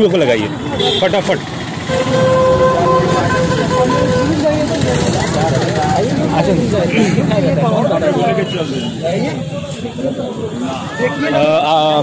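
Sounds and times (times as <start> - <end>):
men talking: 0.0 - 12.0
street traffic noise: 0.0 - 12.0
vehicle horn held: 1.8 - 4.7.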